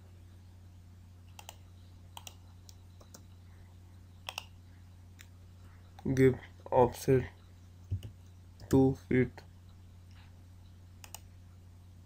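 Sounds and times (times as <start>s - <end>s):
steady low hum: 0.0s - 12.0s
mouse and keyboard clicks: 4.3s - 4.5s, 11.0s - 11.3s.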